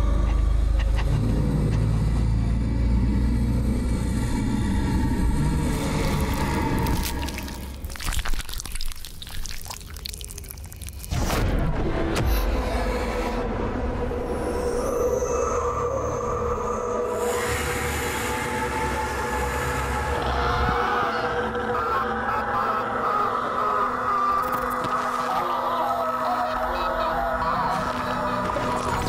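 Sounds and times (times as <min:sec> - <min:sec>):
dense drone with sustained tones: 0:00.0 - 0:07.6, 0:11.8 - 0:24.4.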